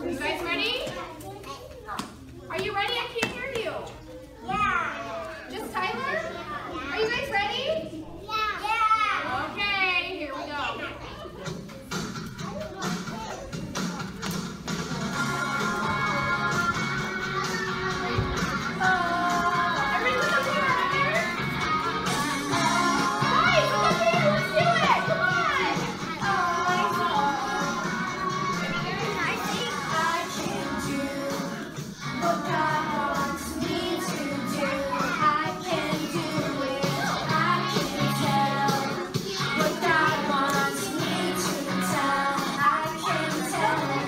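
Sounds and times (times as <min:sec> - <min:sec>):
children calling out and singing: 0:03.3 - 0:44.0
song playing: 0:13.5 - 0:44.0.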